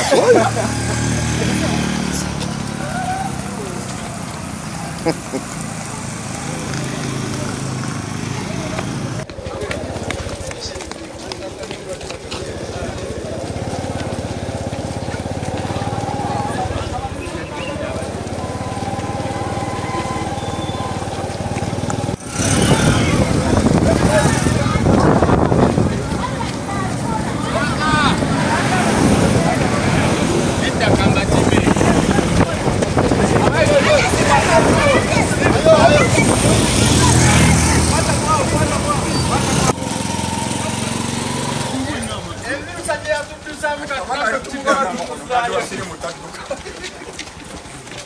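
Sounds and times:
people's voices outdoors: 0.0 - 48.0
road traffic noise: 0.0 - 48.0.

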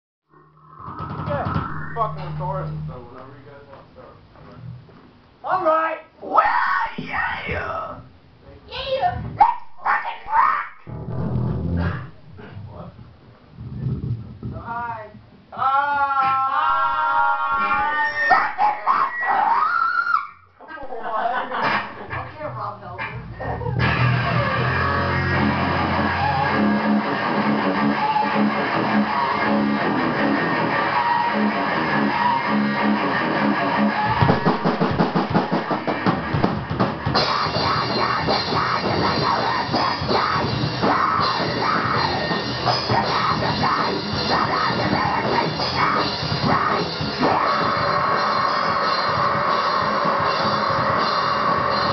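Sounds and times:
metal band playing: 0.3 - 3.8, 21.6 - 51.9
voices: 0.7 - 4.8.

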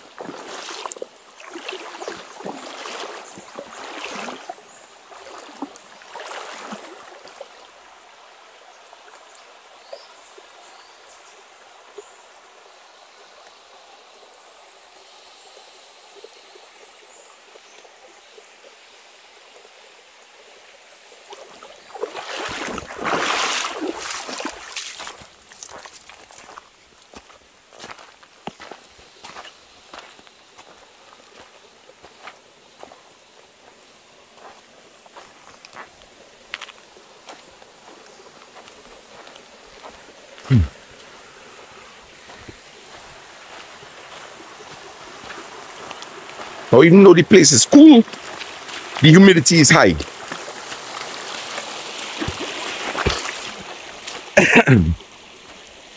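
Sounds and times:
feet splashing through water: 0.0 - 7.7, 21.3 - 33.0, 33.6 - 46.7, 47.7 - 49.0, 49.7 - 55.7
stream trickling over stones: 0.0 - 55.9
footsteps on dry leaves: 22.2 - 30.8.

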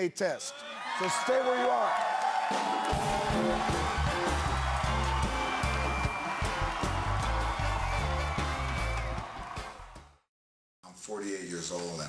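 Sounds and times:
audience applauding: 0.9 - 10.1
band playing upbeat music: 2.5 - 10.0.

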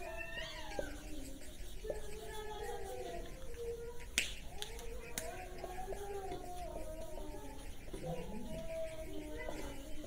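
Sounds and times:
marker squeaking on whiteboard: 0.0 - 10.0.

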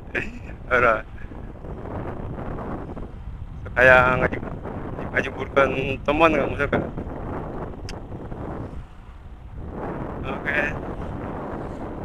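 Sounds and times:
motorcycle engine hum: 0.0 - 12.0
wind noise on microphone: 0.0 - 12.0.

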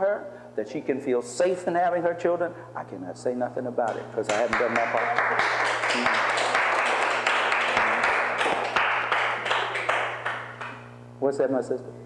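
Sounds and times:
audience applauding: 4.3 - 10.8.

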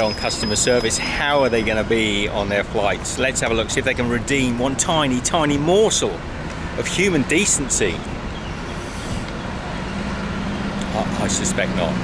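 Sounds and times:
road traffic noise: 0.0 - 12.0
vehicle engine humming: 0.0 - 12.0.

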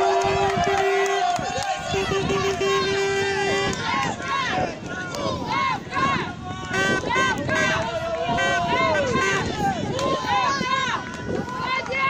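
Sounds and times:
long drawn-out shout: 0.0 - 12.0
people shouting and yelling: 0.0 - 12.0.

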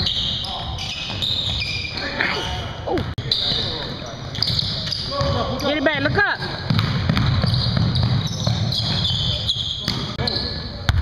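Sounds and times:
gym background noise: 0.0 - 11.0
sneakers squeaking: 0.0 - 11.0
basketball bouncing: 4.4 - 10.2.

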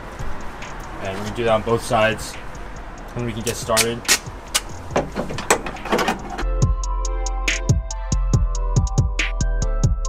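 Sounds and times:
electronic music with heavy bass: 0.0 - 10.0
sharp clicks and knocks: 2.8 - 6.6.

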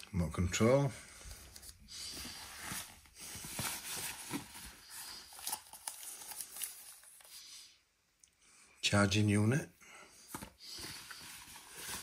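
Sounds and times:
packaging rustling and crinkling: 1.2 - 7.4, 10.3 - 12.0.

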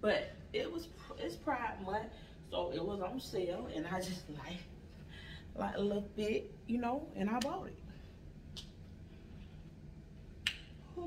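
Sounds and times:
faint room hum: 0.0 - 11.0
finger snap: 8.5 - 8.8, 10.4 - 10.8.

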